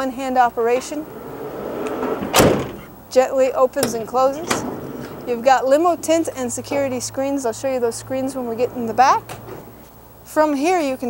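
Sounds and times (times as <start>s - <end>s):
van sliding door rolling: 0.0s - 9.8s
door latching thump: 0.7s - 2.9s.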